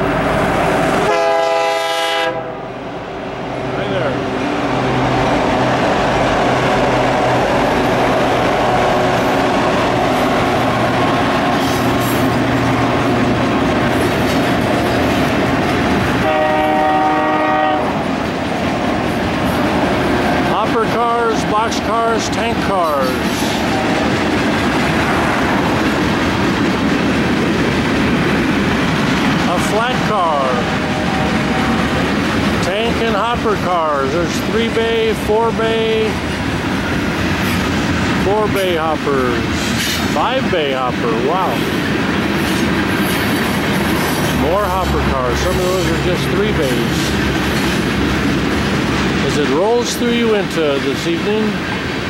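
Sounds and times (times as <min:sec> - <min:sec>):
freight train rolling past: 0:00.0 - 0:52.0
steel wheels clattering on rails: 0:07.6 - 0:16.4, 0:18.0 - 0:35.2, 0:36.0 - 0:52.0.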